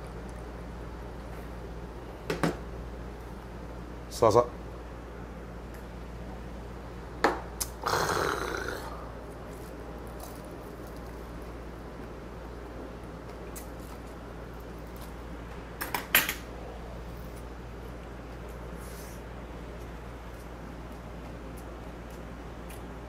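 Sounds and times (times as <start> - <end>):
low room hum: 0.0 - 23.0.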